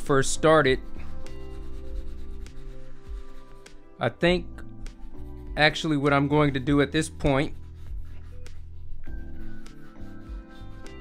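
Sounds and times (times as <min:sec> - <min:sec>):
soft background music: 0:00.0 - 0:11.0
shoe brush on leather: 0:00.5 - 0:03.7, 0:05.1 - 0:11.0.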